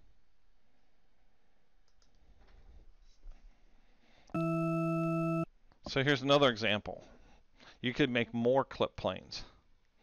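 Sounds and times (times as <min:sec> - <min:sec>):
electronic warning buzz: 0:04.3 - 0:05.5.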